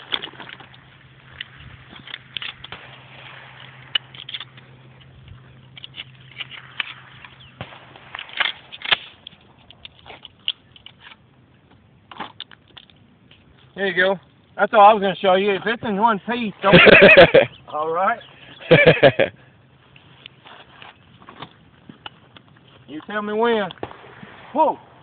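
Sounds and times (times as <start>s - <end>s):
faint steady hum: 0.0s - 25.0s
camera handling clicks and rustles: 8.2s - 13.5s.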